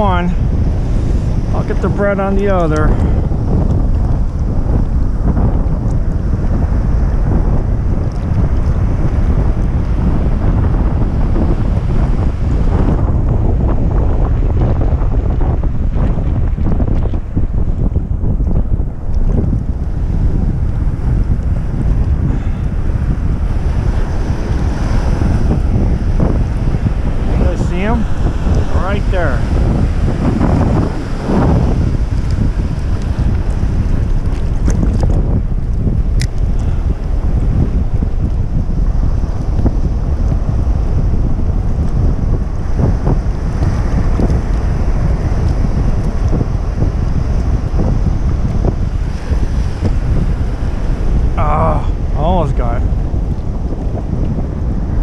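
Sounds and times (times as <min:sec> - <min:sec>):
waves and surf: 0:00.0 - 0:55.0
wind buffeting microphone: 0:00.0 - 0:55.0.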